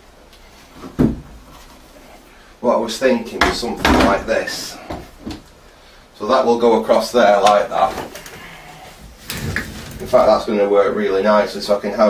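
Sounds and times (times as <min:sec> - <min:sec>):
chair knock and rustle: 0:00.8 - 0:01.4.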